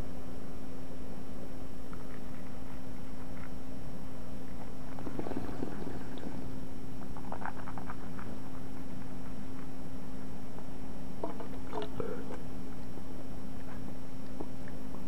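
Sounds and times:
electrical hum and hiss: 0.0s - 15.0s.

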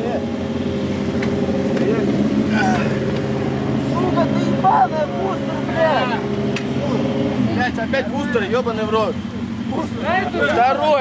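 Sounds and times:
crowd talking: 0.0s - 11.0s
motorcycle engines idling: 0.0s - 11.0s.

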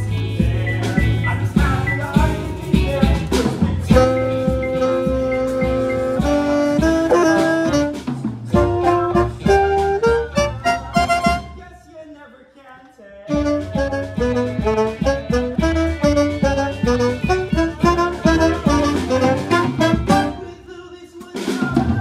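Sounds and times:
pit band playing: 0.0s - 11.8s, 13.3s - 22.0s
alto saxophone melody: 3.9s - 11.6s, 13.3s - 20.5s.

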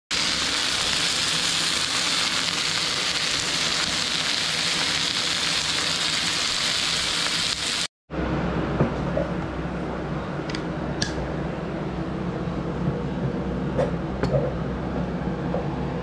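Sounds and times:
steak sizzling in a skillet: 0.1s - 7.9s.

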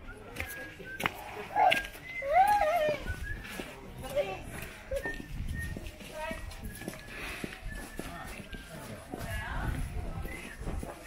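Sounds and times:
chatter of people and children: 0.0s - 11.0s
footsteps on paving: 0.0s - 11.0s.

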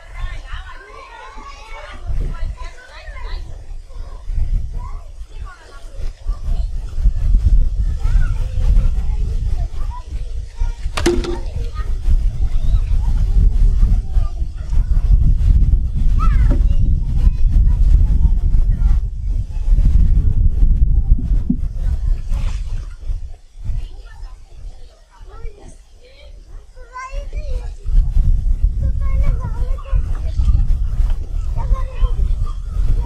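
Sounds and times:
wind buffeting microphone: 0.0s - 33.0s
sharp knock: 11.0s - 11.7s.

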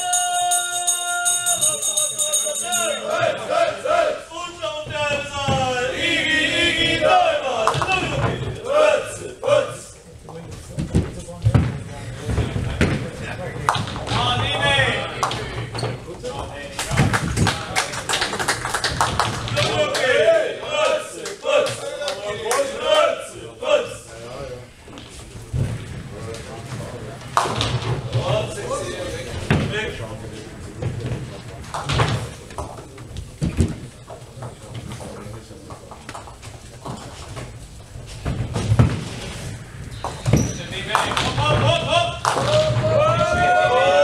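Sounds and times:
raised voices: 0.0s - 10.2s, 19.4s - 25.5s, 40.6s - 44.0s
hand claps: 16.8s - 20.1s, 42.2s - 42.7s
bowling balls and pins knocking: 30.7s - 43.4s.

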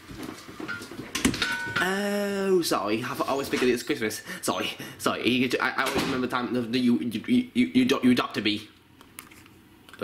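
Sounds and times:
man saying oh: 1.8s - 2.8s.

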